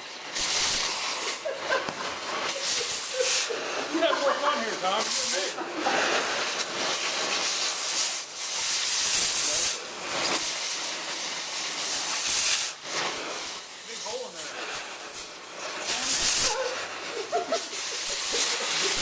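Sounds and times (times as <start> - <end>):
cutting torch hissing: 0.0 - 19.0.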